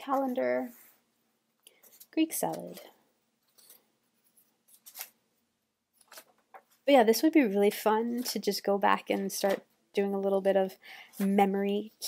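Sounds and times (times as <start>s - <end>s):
paper page turning: 1.8s - 5.2s, 6.0s - 6.8s.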